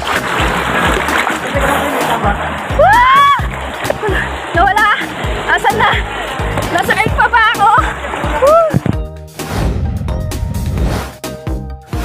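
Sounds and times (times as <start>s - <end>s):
water splashing: 0.0s - 11.2s
background music with beat: 0.0s - 12.0s.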